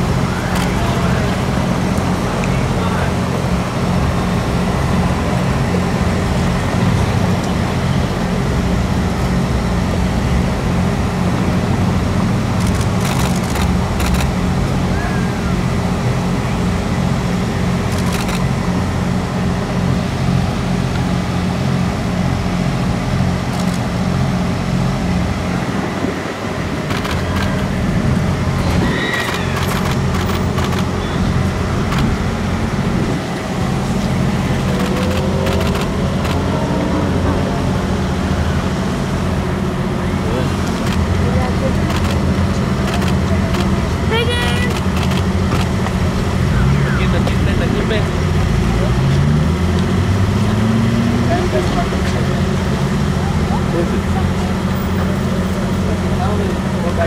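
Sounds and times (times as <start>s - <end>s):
rising whine: 0.0s - 55.9s
engine drone: 0.0s - 57.0s.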